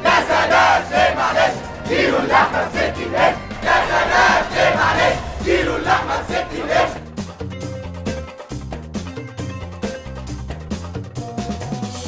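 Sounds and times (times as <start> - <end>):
crowd chanting slogans: 0.0 - 7.2
music: 0.0 - 12.0.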